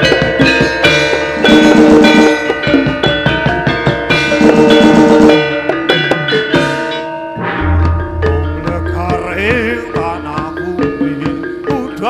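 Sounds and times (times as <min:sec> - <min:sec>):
gamelan music: 0:00.0 - 0:12.0.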